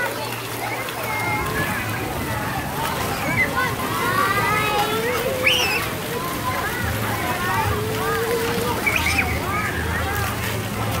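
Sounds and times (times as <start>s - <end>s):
children's voices and shouts: 0.0s - 11.0s
water jets spraying: 0.0s - 11.0s.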